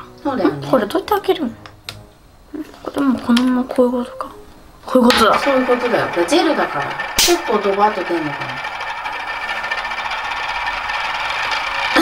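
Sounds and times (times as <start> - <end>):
squeeze bottle rattling buzz: 5.1 - 12.0.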